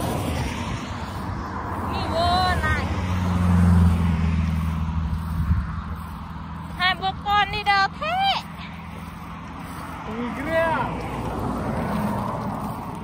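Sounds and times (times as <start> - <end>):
vehicle passing: 0.0 - 13.0.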